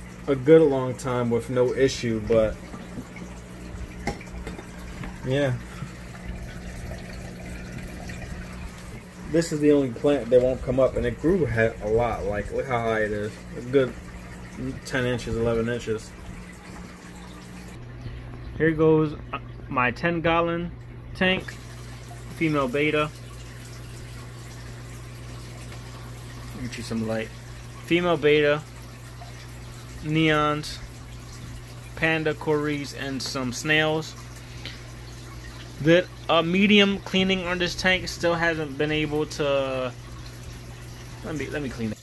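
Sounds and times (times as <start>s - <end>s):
aquarium filter water trickling: 0.0s - 42.0s
low even hum: 0.0s - 42.0s.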